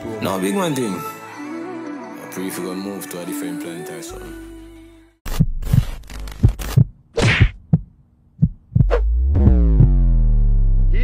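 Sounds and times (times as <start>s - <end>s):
deep falling bass boom: 8.8s - 11.0s.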